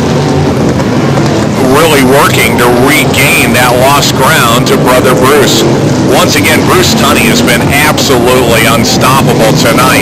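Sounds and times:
race car engines droning: 0:00.0 - 0:10.0
commentator speaking: 0:01.6 - 0:10.0.

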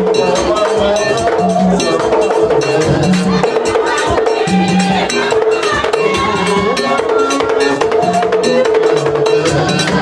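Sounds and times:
percussion: 0:00.0 - 0:10.0
struck metal bell rhythm: 0:00.0 - 0:10.0.

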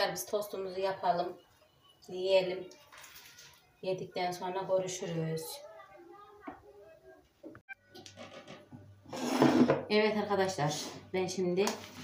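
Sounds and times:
plastic bag crinkling: 0:02.8 - 0:03.8.

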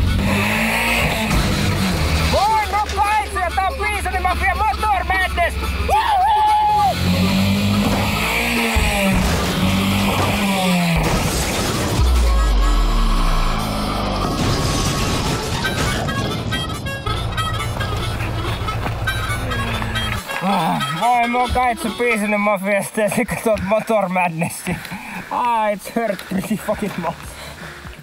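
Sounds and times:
car engine revving: 0:00.0 - 0:20.4
heavy low rumble: 0:08.8 - 0:20.2
background music with melody: 0:15.2 - 0:22.6.

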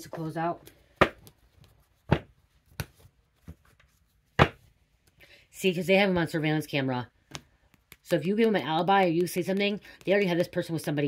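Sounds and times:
cards knocking on wooden table: 0:01.0 - 0:01.3, 0:02.1 - 0:03.7, 0:04.3 - 0:04.7.

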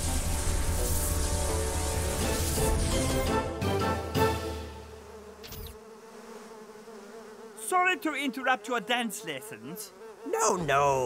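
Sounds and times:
music: 0:00.0 - 0:04.9
bees buzzing: 0:00.0 - 0:11.0.

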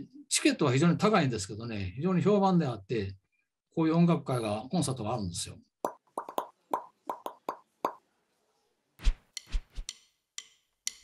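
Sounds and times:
pitched pop sound effects: 0:05.9 - 0:08.0.

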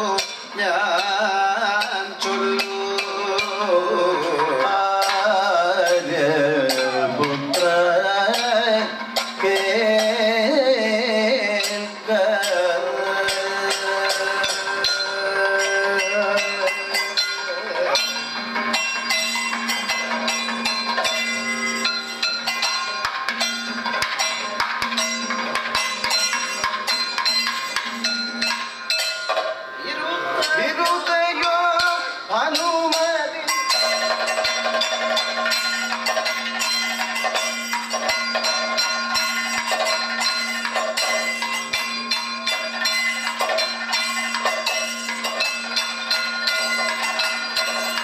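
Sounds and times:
ringing metal percussion: 0:00.0 - 0:48.0.

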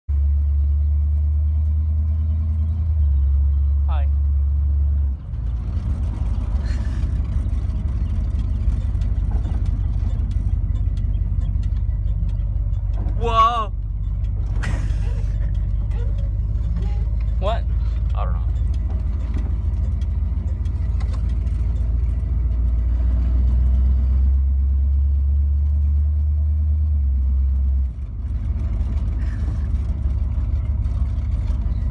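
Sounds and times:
car engine rumbling inside cabin: 0:00.1 - 0:31.9.

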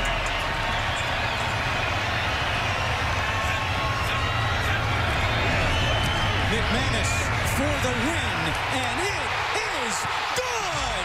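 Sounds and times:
roar of stadium crowd: 0:00.0 - 0:11.0.

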